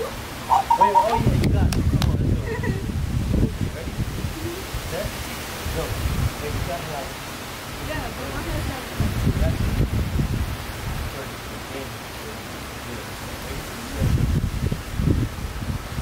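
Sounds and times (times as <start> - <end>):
wind buffeting microphone: 0.2 - 7.2, 7.8 - 11.2, 13.4 - 16.0
steady hiss: 2.8 - 16.0.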